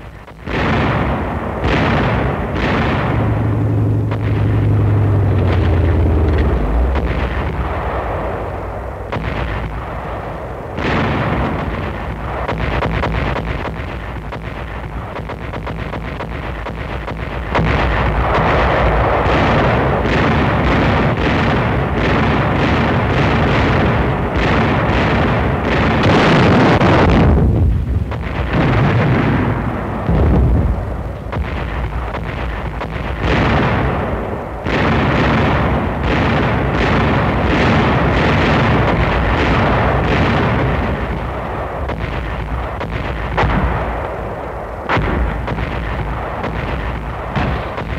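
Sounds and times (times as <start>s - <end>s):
artillery and tank gunfire: 0.0s - 47.9s
explosions: 0.0s - 47.9s.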